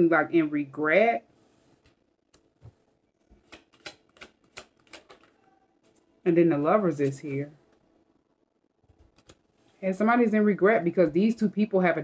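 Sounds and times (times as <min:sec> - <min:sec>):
cards being shuffled: 0:03.3 - 0:06.1.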